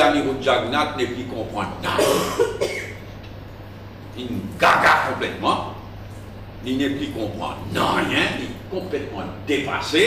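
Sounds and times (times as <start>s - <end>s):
steady low hum: 0.0s - 10.0s
man coughing: 1.9s - 3.0s.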